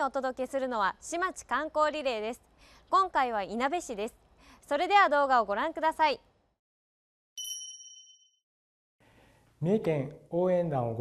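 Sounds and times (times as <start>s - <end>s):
bell-like ding: 7.4s - 8.4s.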